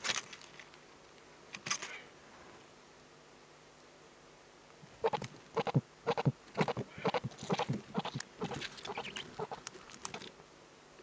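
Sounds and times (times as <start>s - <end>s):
owls calling: 5.0s - 9.7s.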